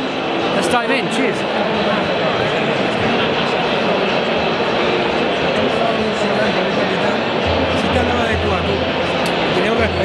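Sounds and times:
crowd babble in a big hall: 0.0s - 10.0s.

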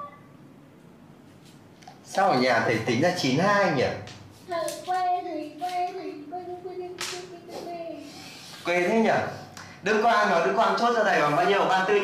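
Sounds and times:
high child-like voice singing: 4.4s - 8.1s.

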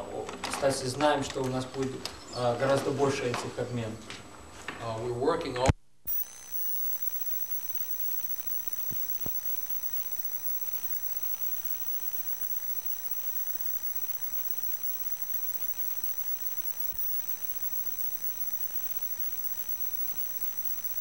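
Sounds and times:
high-pitched steady whine: 6.1s - 21.0s
small clicks: 6.1s - 21.0s
tape hiss: 6.1s - 21.0s.

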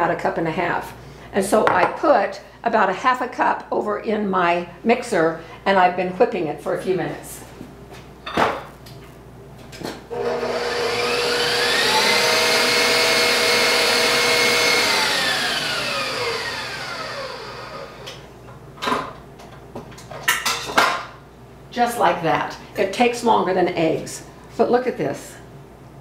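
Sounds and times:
stand mixer motor whine: 10.1s - 18.2s.

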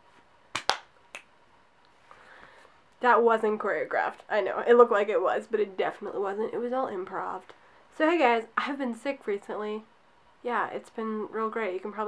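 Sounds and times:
finger snap: 0.5s - 1.3s.

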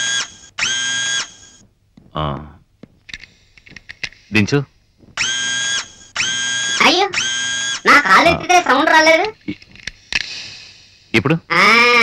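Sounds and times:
electric motor whirring: 0.0s - 1.6s, 5.2s - 8.4s.

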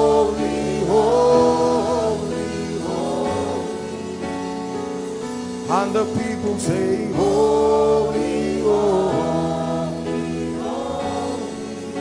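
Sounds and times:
choir singing: 0.0s - 12.0s
instrumental accompaniment: 0.0s - 12.0s.

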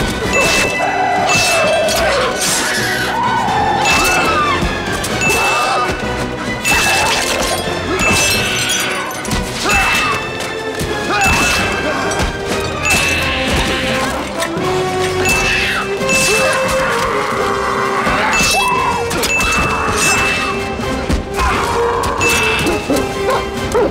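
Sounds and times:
driving orchestral score: 0.0s - 23.9s.

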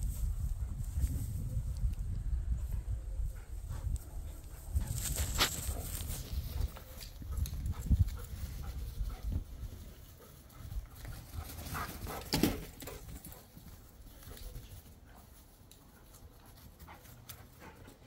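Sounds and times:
dogs panting: 2.6s - 18.0s.

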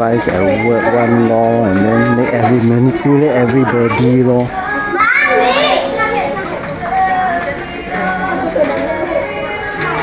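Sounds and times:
people chattering: 0.0s - 10.0s
child's high-pitched voice: 4.9s - 6.7s.

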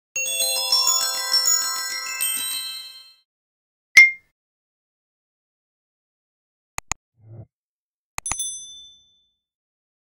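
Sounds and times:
tinkly bell-like jingle: 0.2s - 3.3s, 8.4s - 9.5s
short sharp ding: 4.0s - 4.3s.

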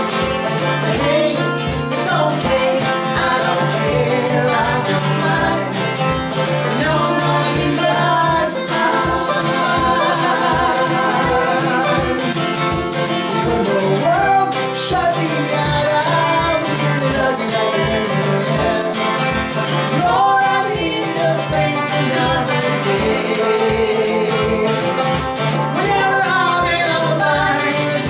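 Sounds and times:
banjo: 0.0s - 28.0s
strummed acoustic guitar: 0.0s - 28.0s
sung vocals: 0.0s - 28.0s.

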